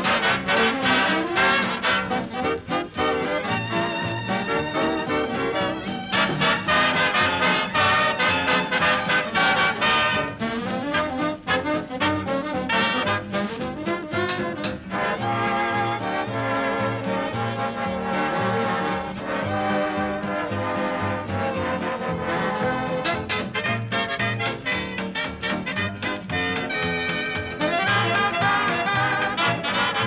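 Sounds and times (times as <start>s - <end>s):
swing orchestra with brass: 0.0s - 30.0s.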